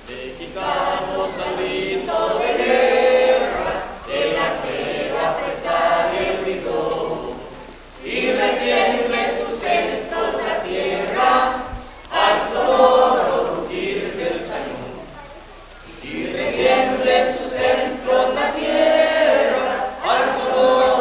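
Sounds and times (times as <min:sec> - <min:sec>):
group singing in unison: 0:00.0 - 0:15.1, 0:15.8 - 0:21.0.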